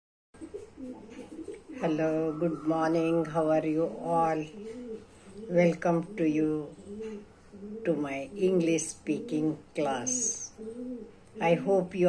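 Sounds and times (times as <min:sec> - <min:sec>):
pigeon cooing: 0:00.4 - 0:12.0
woman speaking: 0:01.7 - 0:04.5, 0:05.5 - 0:06.7, 0:07.8 - 0:10.6, 0:11.4 - 0:12.0.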